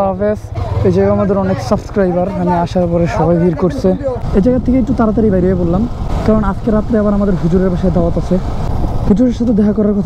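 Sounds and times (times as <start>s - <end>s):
person talking: 0.0s - 8.5s
motorcycle wind and road noise: 0.0s - 10.0s.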